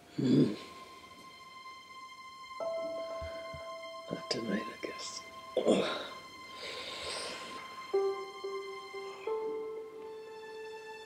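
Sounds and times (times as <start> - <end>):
soft sustained music notes: 0.0 - 11.0.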